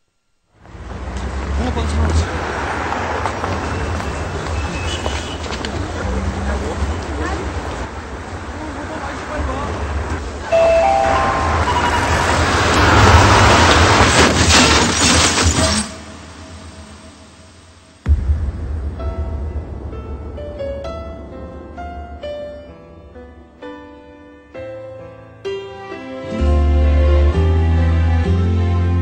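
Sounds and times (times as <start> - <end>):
street traffic hum: 0.5 - 17.3
passing vehicles rumble and hiss: 0.6 - 14.2
short high beep: 10.5 - 13.6.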